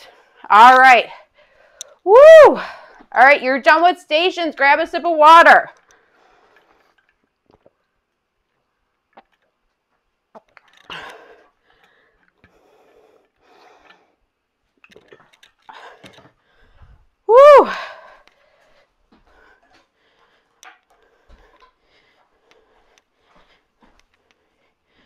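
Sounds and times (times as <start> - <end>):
woman breathing: 0.0 - 3.1, 10.8 - 14.3, 15.6 - 25.0
woman shouting woo: 2.1 - 2.6, 17.3 - 17.8.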